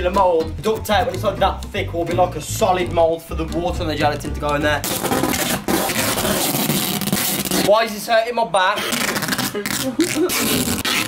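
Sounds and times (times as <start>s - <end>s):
duct tape ripping off roll: 4.8s - 7.8s, 8.8s - 11.0s.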